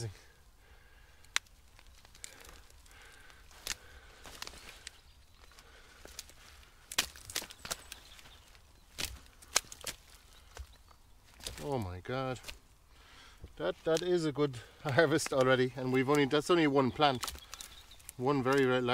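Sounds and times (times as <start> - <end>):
roots cracking: 0.0 - 18.9
plant rustling: 0.8 - 18.9.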